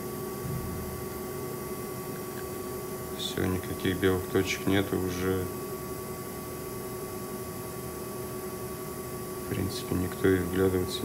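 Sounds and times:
low constant hum: 0:00.0 - 0:11.0.

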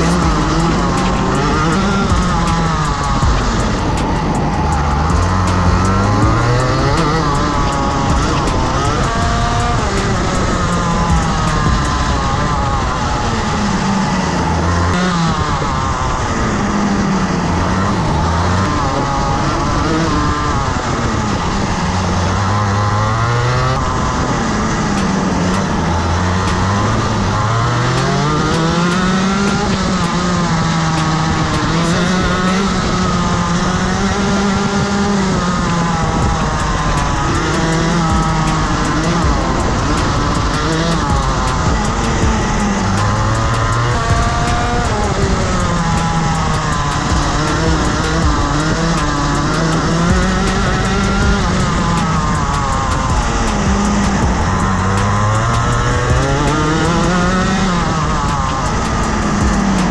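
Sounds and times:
kart engine revving: 0:00.0 - 0:59.9.

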